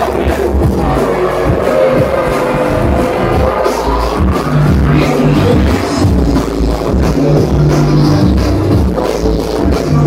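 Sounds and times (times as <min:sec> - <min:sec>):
drum and bass music: 0:00.0 - 0:10.0
held synth note: 0:00.7 - 0:06.2.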